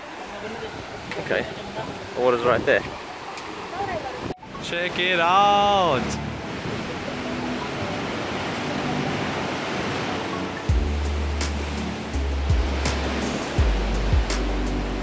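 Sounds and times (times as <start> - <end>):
surf washing in sea cave: 0.0 - 15.0
music with deep bass and beat: 10.6 - 15.0.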